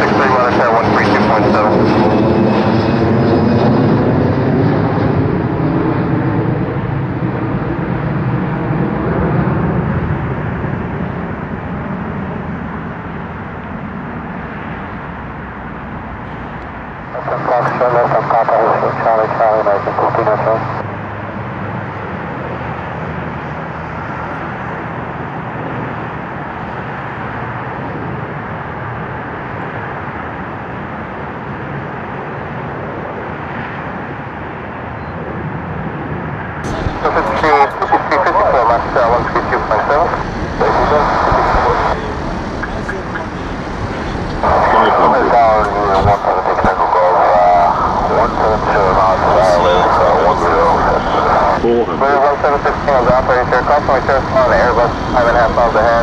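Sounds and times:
radio hiss: 0.0s - 1.7s, 17.1s - 20.8s, 36.7s - 56.0s
voices talking over radio: 0.0s - 6.4s, 17.0s - 20.9s, 36.6s - 56.0s.

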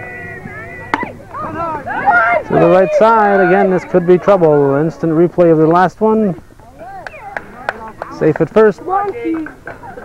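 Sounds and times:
people calling out: 0.0s - 5.8s, 6.6s - 8.2s.

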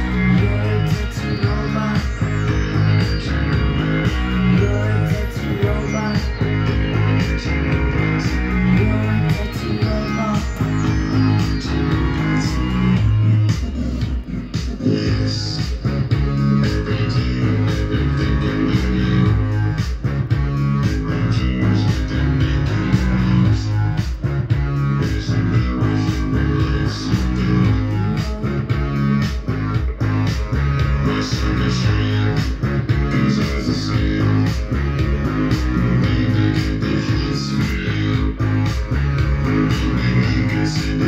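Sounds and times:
rock music from vinyl record: 0.0s - 41.0s.

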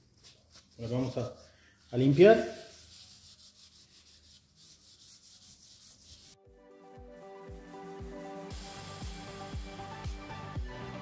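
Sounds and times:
cloth rubbing on resin surface: 0.0s - 6.4s
background music with steady beat: 6.1s - 11.0s.

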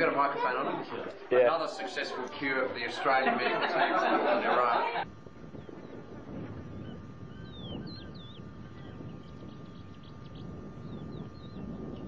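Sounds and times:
low outdoor rumble: 0.0s - 12.0s
small birds chirping and whistling: 6.7s - 12.0s.

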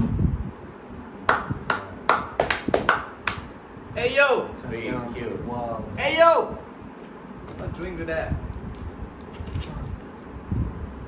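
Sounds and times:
person clapping hands: 1.3s - 3.5s.

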